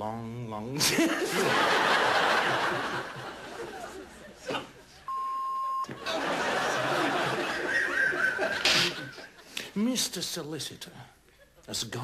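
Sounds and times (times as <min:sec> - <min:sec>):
men laughing: 0:00.8 - 0:05.0, 0:06.0 - 0:09.6.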